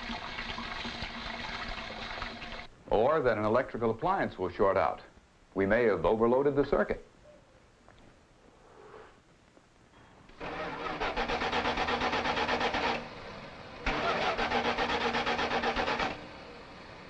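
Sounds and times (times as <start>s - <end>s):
car engine cranking: 10.3s - 17.0s.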